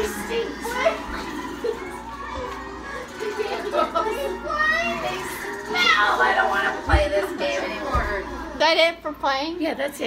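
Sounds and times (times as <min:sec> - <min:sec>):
children calling out: 0:00.0 - 0:06.8
background music: 0:00.0 - 0:09.9.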